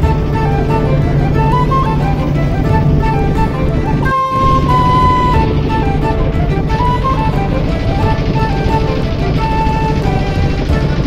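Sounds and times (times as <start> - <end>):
melodic background music: 0.0 - 11.0.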